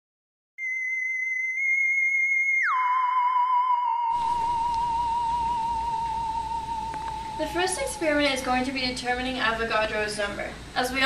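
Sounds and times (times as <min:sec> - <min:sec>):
high electronic tone: 0:00.6 - 0:09.0.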